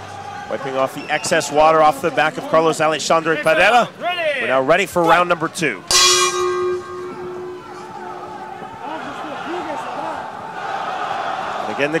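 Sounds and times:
crowd noise: 0.0s - 12.0s
boxing ring bell strike: 5.9s - 8.4s.

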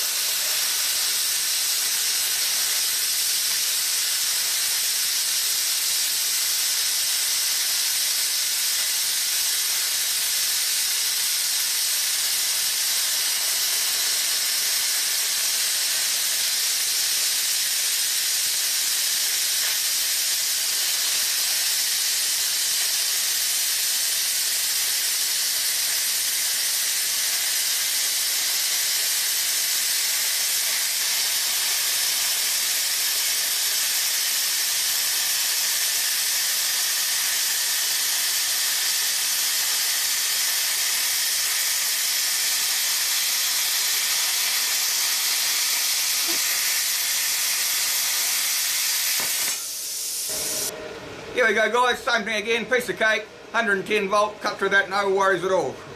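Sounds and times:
plasma cutter hissing: 0.0s - 50.7s.

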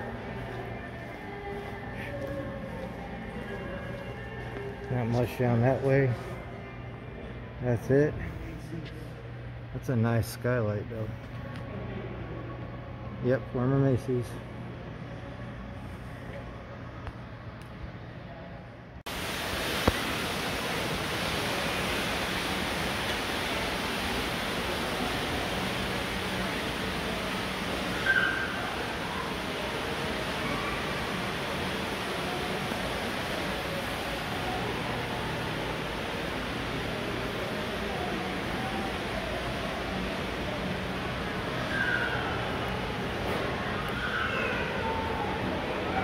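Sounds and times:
steady ambient hiss: 0.0s - 46.0s.

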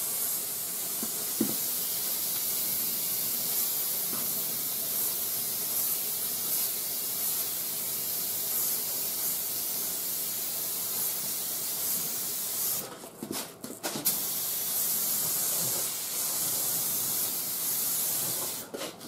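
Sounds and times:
paint spray gun hissing: 0.0s - 12.8s, 14.1s - 18.6s.

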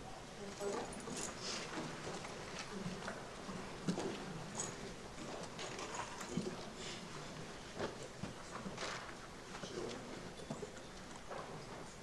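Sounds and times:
faint room murmur: 0.0s - 12.0s.

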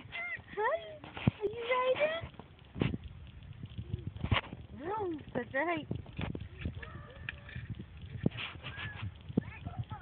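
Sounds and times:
child squealing and babbling: 6.8s - 7.5s.

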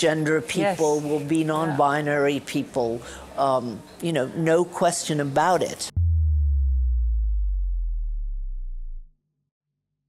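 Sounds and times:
deep electronic bass hit: 5.9s - 9.1s.

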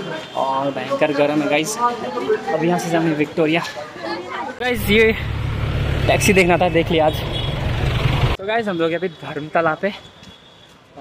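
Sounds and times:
street traffic rumble: 4.5s - 11.0s
man talking: 4.6s - 5.4s, 6.0s - 7.3s.

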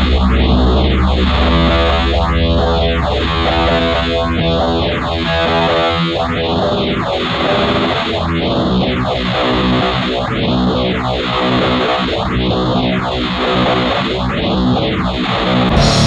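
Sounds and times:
distorted electric guitars: 0.0s - 16.0s
heavy low drone: 0.0s - 16.0s.

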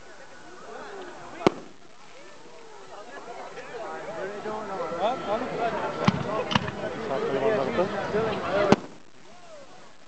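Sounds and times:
firework bang: 1.4s - 1.8s, 8.7s - 9.0s.

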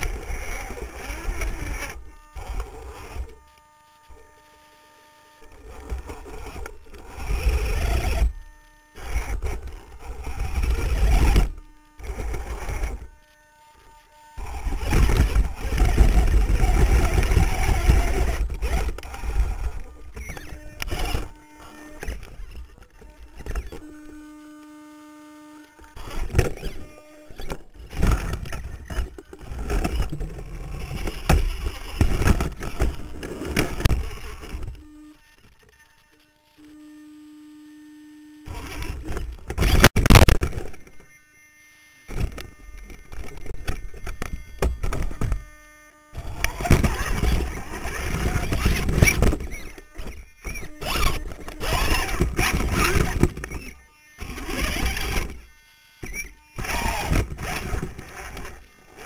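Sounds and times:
electric motors driving: 0.0s - 59.0s
faint steady whine: 0.0s - 59.0s.

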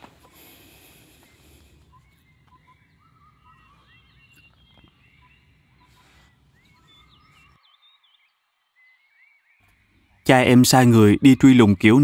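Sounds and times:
small birds chirping: 0.0s - 12.0s.

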